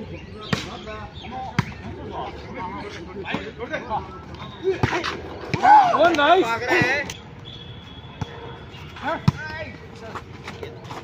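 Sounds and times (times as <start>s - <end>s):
players shouting: 3.2s - 7.2s.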